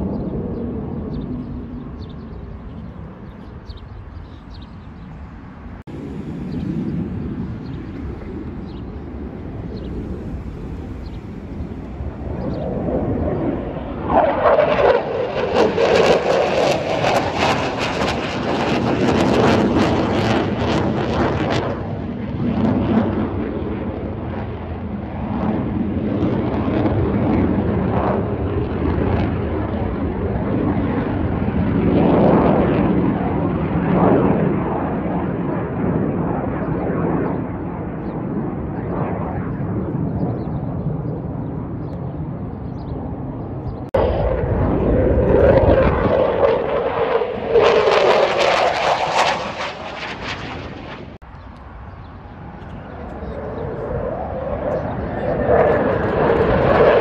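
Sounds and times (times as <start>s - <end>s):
jet engine roar overhead: 0.0s - 57.0s.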